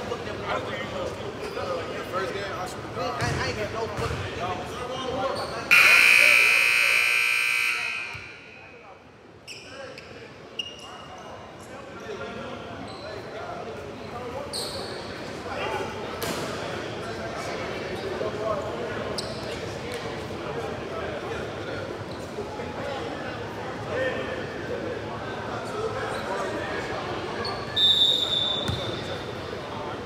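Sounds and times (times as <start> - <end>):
players' voices: 0.0 - 30.0
scoreboard buzzer: 5.7 - 8.6.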